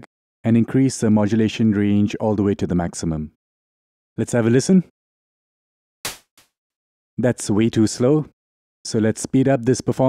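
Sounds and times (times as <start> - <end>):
electronic clap noise burst: 6.0 - 6.5.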